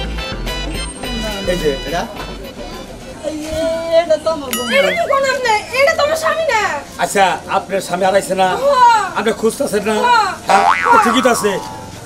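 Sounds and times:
high-pitched wavering voice: 0:10.5 - 0:12.0.

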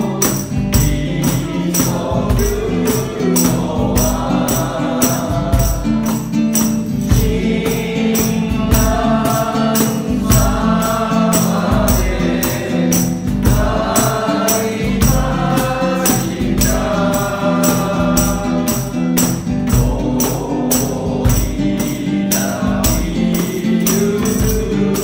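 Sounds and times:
group of voices singing: 0:00.0 - 0:25.0
strummed guitar: 0:00.0 - 0:25.0
tambourine jingling: 0:00.0 - 0:25.0.

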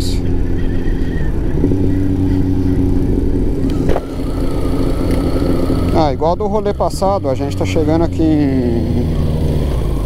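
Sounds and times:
motorcycle engine cruising: 0:00.0 - 0:10.0
road and wind noise: 0:00.0 - 0:10.0.

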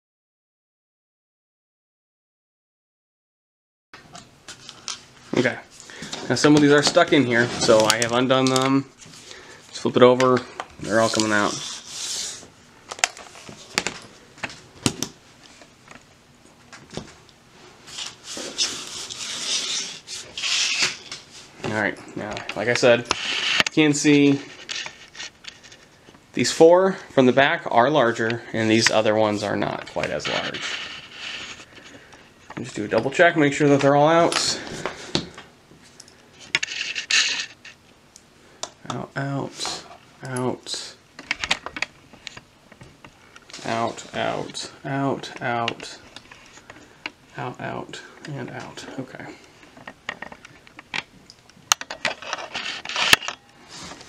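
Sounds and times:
laptop scraping on table: 0:23.1 - 0:23.7, 0:30.2 - 0:31.8.

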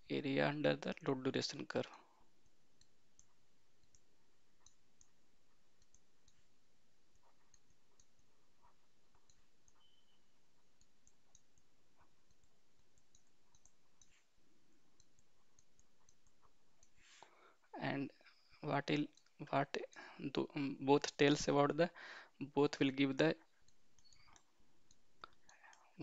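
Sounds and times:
faint room noise: 0:00.0 - 0:26.0
stylus tapping on tablet: 0:02.4 - 0:17.1.

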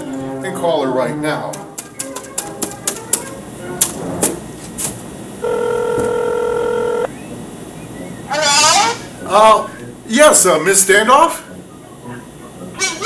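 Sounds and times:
telephone ringback tone: 0:05.4 - 0:07.1.

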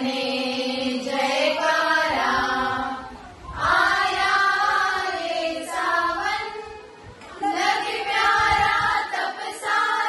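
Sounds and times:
women singing a hymn in unison: 0:00.0 - 0:10.0.

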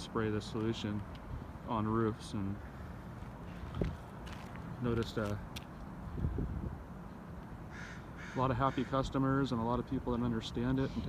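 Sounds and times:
crow cawing: 0:07.7 - 0:09.1.

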